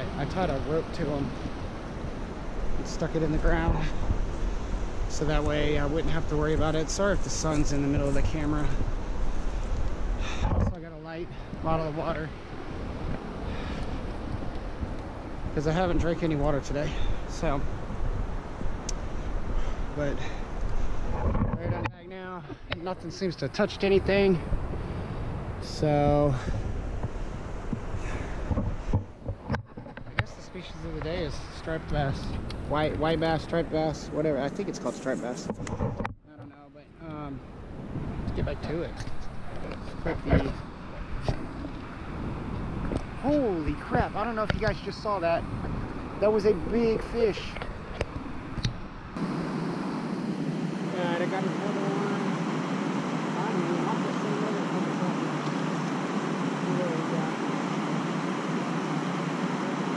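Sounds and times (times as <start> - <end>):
wind buffeting microphone: 0.0 - 36.3, 37.1 - 59.9.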